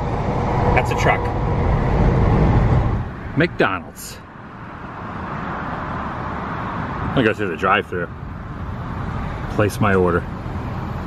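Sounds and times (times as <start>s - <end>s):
road and engine rumble inside car: 0.0s - 11.0s.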